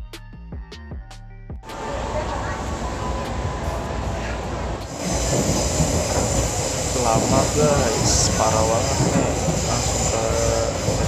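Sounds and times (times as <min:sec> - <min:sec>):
train carriage noise: 0:01.6 - 0:11.0.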